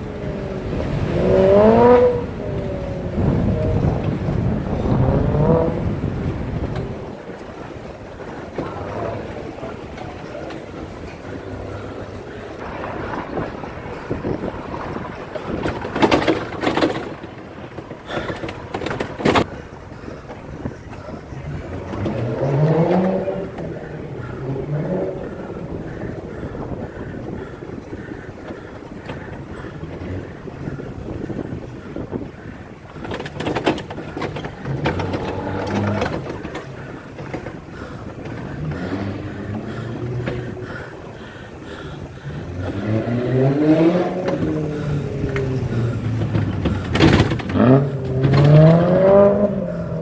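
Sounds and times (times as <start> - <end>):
car engines accelerating: 0.0 - 50.0
road and wind noise: 0.0 - 50.0.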